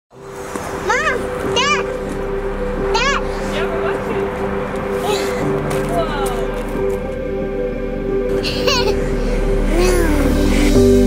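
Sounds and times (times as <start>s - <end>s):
background music: 0.1s - 11.0s
toddler calling: 0.8s - 2.0s, 2.9s - 3.3s.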